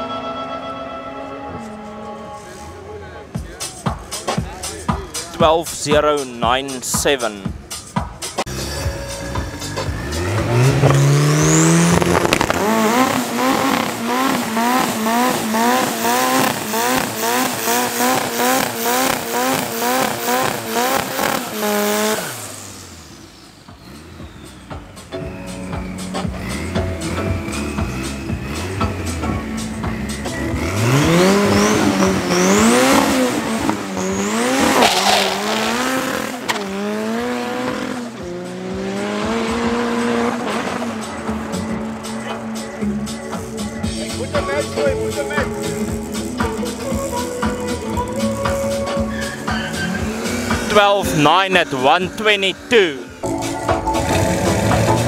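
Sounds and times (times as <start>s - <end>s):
truck engine revving: 0.0s - 55.0s
tyres squealing: 39.9s - 53.1s.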